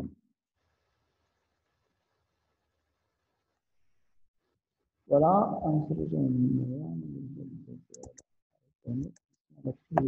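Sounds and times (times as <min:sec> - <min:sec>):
computer mouse clicks: 0:07.9 - 0:08.2.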